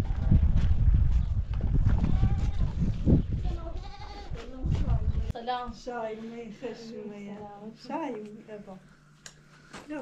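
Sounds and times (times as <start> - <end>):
farm animal bleating: 2.1 - 2.8, 3.5 - 4.4.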